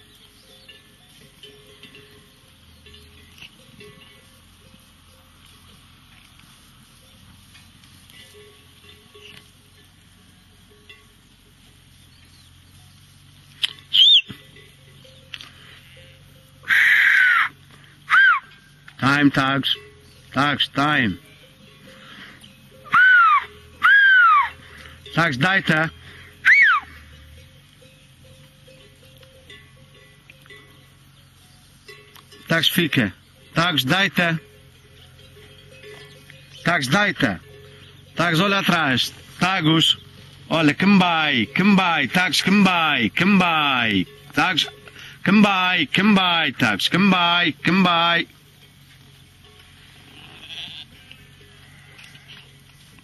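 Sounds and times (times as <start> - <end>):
loud sweeping whistle: 13.9 - 14.3
sheep bleat: 22.0 - 24.8, 50.0 - 52.5.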